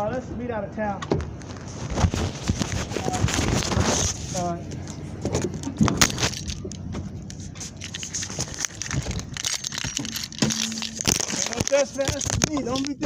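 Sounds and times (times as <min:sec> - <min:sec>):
phone handling rustling: 0:04.7 - 0:13.0
sharp clicks and knocks: 0:04.8 - 0:13.0.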